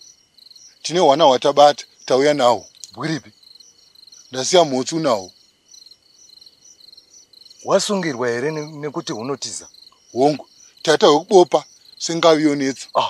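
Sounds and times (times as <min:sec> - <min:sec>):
crickets chirping: 0:00.0 - 0:13.0
thin insect trill: 0:00.0 - 0:13.0
person speaking: 0:00.8 - 0:03.3, 0:07.6 - 0:09.6, 0:10.2 - 0:13.0.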